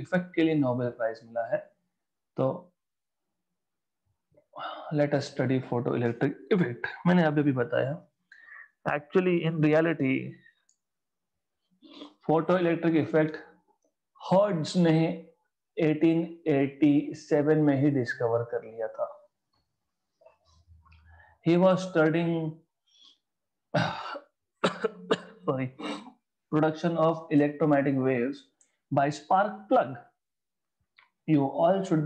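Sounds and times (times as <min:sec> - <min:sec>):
man speaking: 0:00.0 - 0:01.8, 0:04.7 - 0:10.4, 0:15.8 - 0:19.3, 0:25.4 - 0:30.1, 0:31.2 - 0:32.0
faint breath: 0:08.3 - 0:08.8
man coughing: 0:23.8 - 0:26.2.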